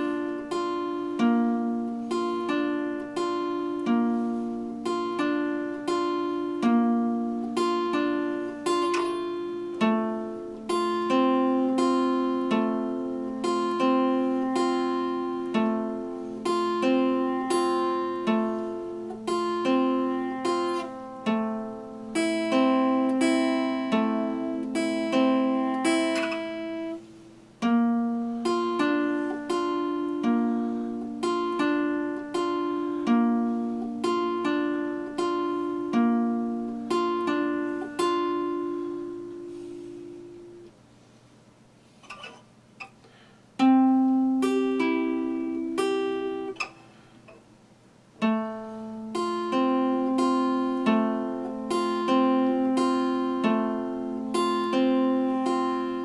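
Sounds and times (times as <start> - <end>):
fingerpicked acoustic guitar: 0.0 - 56.0.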